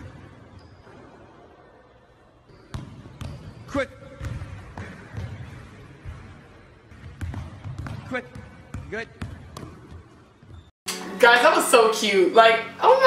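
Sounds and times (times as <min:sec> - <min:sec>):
shoe squeak: 0:00.5 - 0:01.1, 0:02.5 - 0:03.8, 0:10.0 - 0:10.7
basketball bouncing on court: 0:02.5 - 0:10.7.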